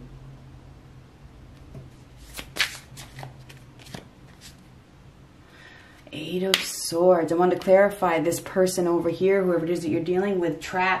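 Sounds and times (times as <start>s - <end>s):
cards snapping and sliding: 2.2s - 4.6s.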